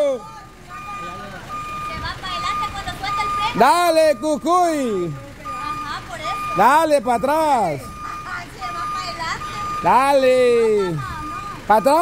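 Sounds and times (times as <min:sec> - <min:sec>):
low engine rumble: 0:00.0 - 0:12.0
truck reversing alarm beeping: 0:00.0 - 0:12.0.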